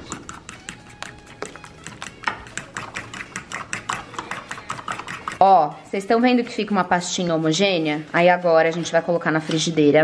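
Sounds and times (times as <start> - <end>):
fork clicking against bowl: 0.0 - 5.4.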